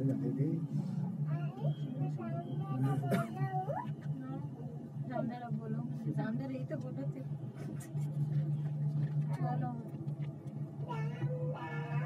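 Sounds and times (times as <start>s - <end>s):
cable car hum: 0.0s - 12.0s
people talking: 1.3s - 8.2s, 9.3s - 9.9s.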